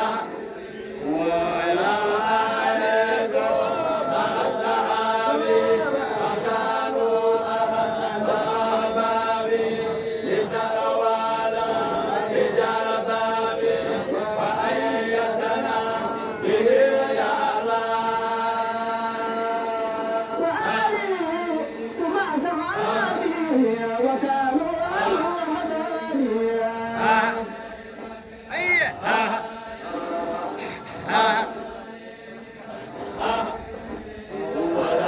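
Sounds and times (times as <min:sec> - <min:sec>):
men chanting together: 0:00.0 - 0:35.0.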